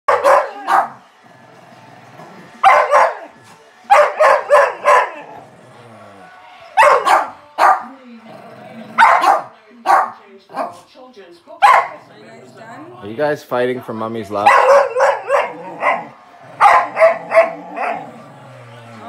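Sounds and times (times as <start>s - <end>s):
dog barking: 0.1s - 1.0s, 2.6s - 3.3s, 3.9s - 5.3s, 6.8s - 7.9s, 9.0s - 10.9s, 11.6s - 12.1s, 14.4s - 18.0s.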